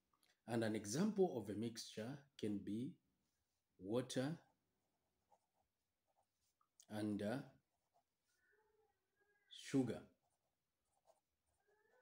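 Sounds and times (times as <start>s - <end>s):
marker scratching on paper: 5.0s - 6.6s, 10.2s - 11.7s.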